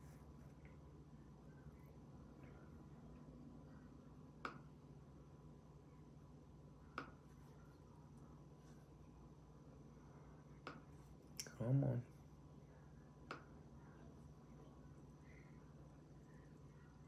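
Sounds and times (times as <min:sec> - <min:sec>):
faint steady hum: 0:00.0 - 0:17.0.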